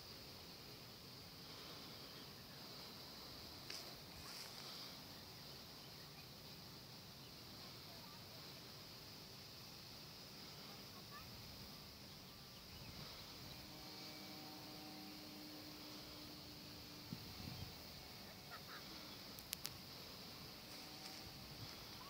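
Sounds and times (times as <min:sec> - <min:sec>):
faint outdoor hiss: 0:00.0 - 0:22.0
faint steady hum: 0:00.0 - 0:22.0
sharp clicks: 0:19.3 - 0:19.8.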